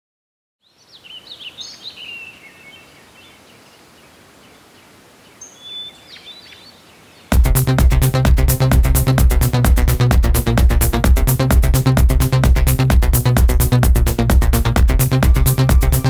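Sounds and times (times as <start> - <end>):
birds chirping: 0.6 - 7.4
faint outdoor hiss: 0.6 - 7.4
electronic music with beat: 7.3 - 16.0.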